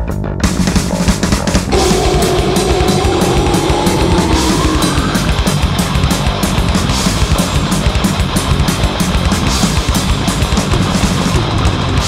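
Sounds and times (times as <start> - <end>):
metal music with distorted guitars: 1.7 - 12.0.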